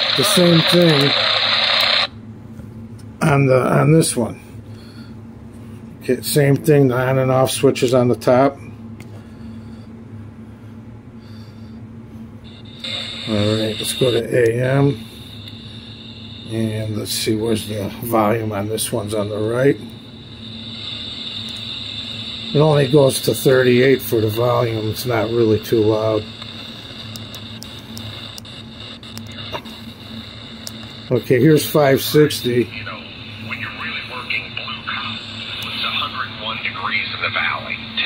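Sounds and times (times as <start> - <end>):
radio static hiss: 0.0 - 2.1, 12.5 - 38.0
low hum: 0.0 - 38.0.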